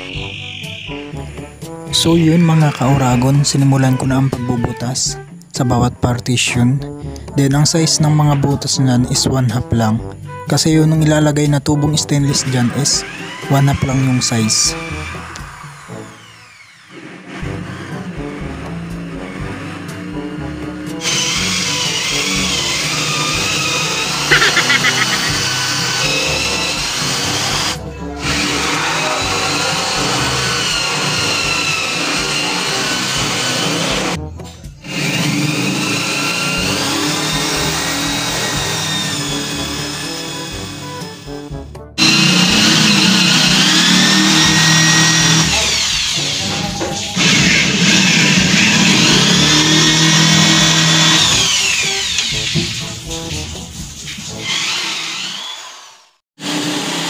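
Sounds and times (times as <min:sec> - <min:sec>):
cordless drill boring wood: 0:00.0 - 0:04.8, 0:12.1 - 0:34.2, 0:34.8 - 0:53.0, 0:54.4 - 0:57.0
music playing: 0:00.0 - 0:15.6, 0:24.1 - 0:26.7.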